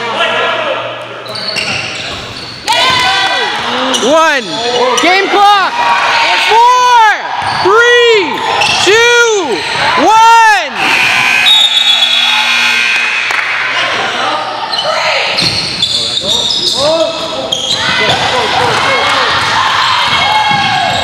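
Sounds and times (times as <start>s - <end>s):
scoreboard buzzer: 10.8s - 13.8s.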